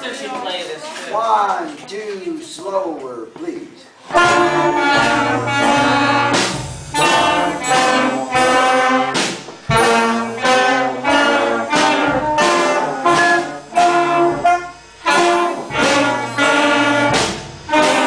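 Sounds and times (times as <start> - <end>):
school band playing: 4.0 - 18.0.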